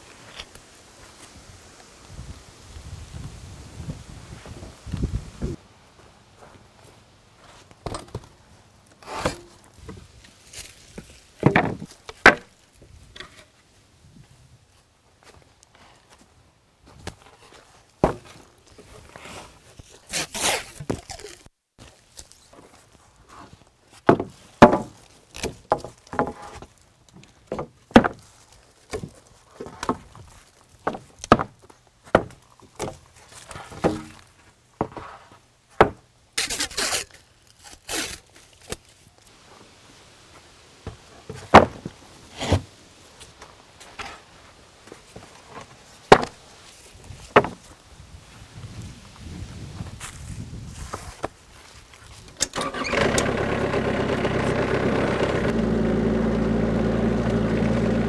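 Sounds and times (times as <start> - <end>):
wooden boards knocking and clattering: 11.4 - 12.5, 18.0 - 18.3, 24.1 - 26.7, 27.5 - 28.2, 30.8 - 33.0, 33.6 - 34.2, 35.8 - 36.0, 41.3 - 42.0, 45.6 - 46.4, 47.3 - 47.6
footsteps on leaves and gravel: 49.8 - 52.3.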